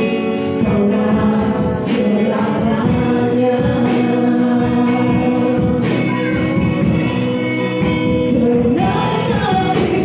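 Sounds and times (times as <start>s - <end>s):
bass guitar: 0.0s - 10.0s
electric guitar: 0.0s - 10.0s
voices singing into microphones: 0.0s - 10.0s.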